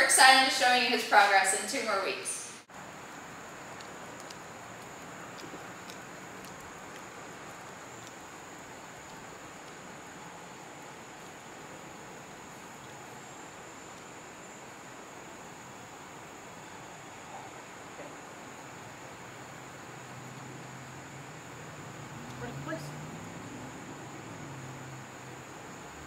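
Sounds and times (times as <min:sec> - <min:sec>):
insects droning: 0:00.0 - 0:26.0
outdoor background hiss: 0:00.0 - 0:26.0.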